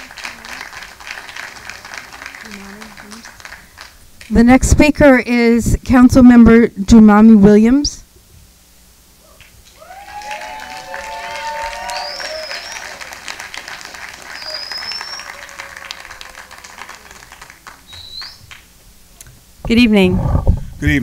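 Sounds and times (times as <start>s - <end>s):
audience applauding: 0.0s - 4.0s, 9.7s - 18.7s
voices cheering: 9.3s - 18.4s.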